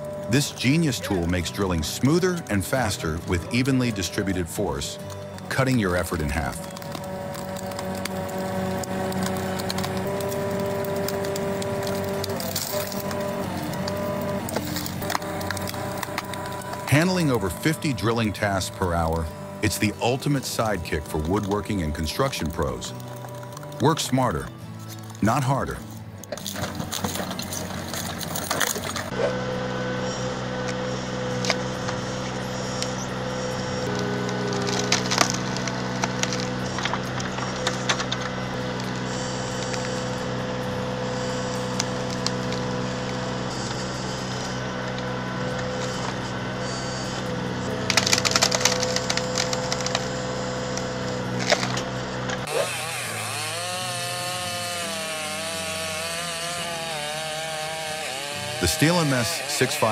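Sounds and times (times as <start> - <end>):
wood cracking and splintering: 0.0 - 29.7, 30.4 - 59.9
steady machine hum: 27.5 - 52.5.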